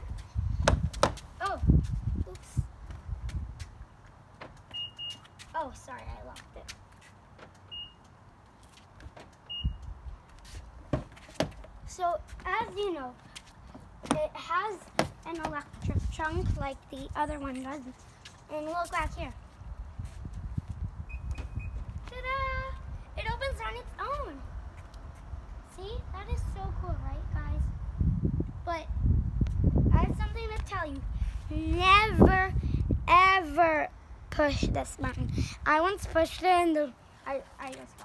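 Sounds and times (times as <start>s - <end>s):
high car lock beep: 4.7s - 5.3s, 7.7s - 8.1s, 9.5s - 9.9s, 21.1s - 21.8s.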